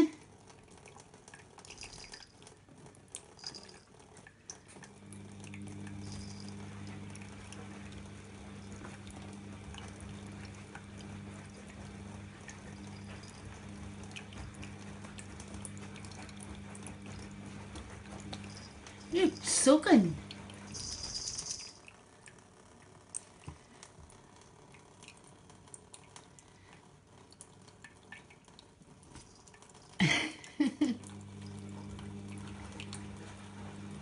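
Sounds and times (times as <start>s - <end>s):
low steady hum: 0.0s - 34.0s
tap water trickling into a sink: 0.1s - 19.6s, 21.6s - 34.0s
cat licking water: 0.1s - 20.8s, 21.7s - 34.0s.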